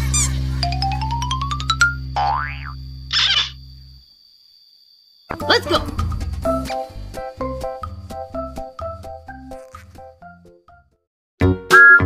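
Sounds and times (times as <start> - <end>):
cartoon boing: 2.2 - 3.5, 11.7 - 12.0
background music: 5.3 - 12.0.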